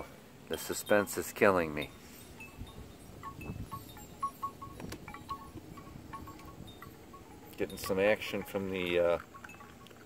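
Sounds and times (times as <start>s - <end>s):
bamboo wind chime knocking: 1.8s - 10.0s.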